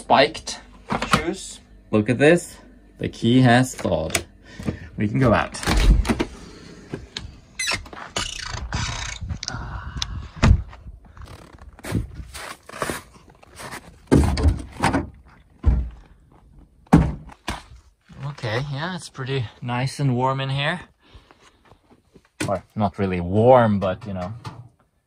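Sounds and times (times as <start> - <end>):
door opening: 5.2 - 9.5
heavy wooden thunks: 10.2 - 10.9, 14.0 - 16.2, 16.8 - 17.4.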